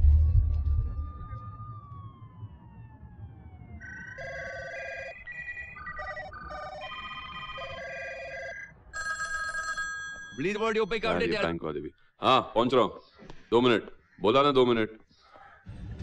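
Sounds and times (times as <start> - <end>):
low rumble: 0.0 - 3.9
tone gliding downward: 0.0 - 8.5
electronic ringtone melody: 3.8 - 11.4
phone ringing: 3.8 - 11.5.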